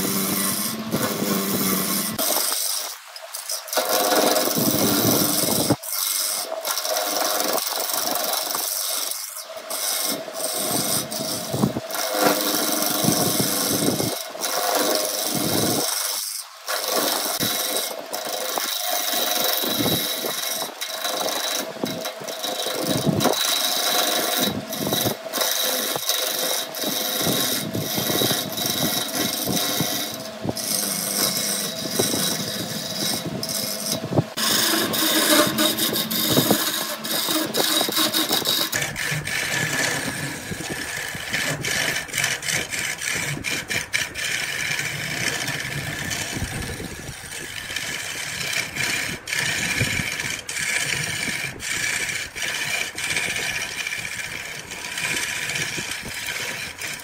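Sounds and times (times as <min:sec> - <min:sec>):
lathe tool scraping wood: 0:00.0 - 0:57.0.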